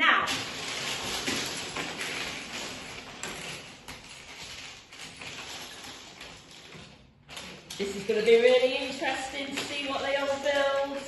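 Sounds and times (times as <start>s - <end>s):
plastic bricks clattering: 0.3s - 11.0s.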